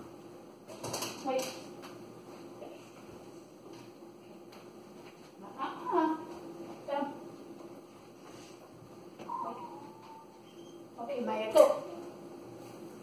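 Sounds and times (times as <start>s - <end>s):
faint steady hum: 0.0s - 13.0s
high-pitched vocal sounds: 9.3s - 10.4s.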